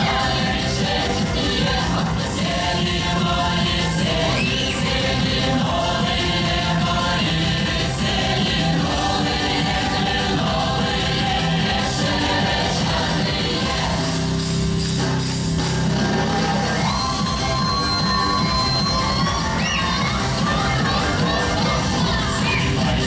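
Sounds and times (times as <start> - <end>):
choir singing folk dance song: 0.0 - 23.0.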